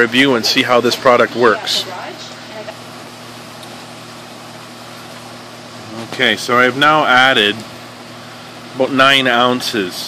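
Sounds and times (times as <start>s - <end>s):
constant hiss: 0.0s - 10.0s
low mechanical hum: 0.0s - 10.0s.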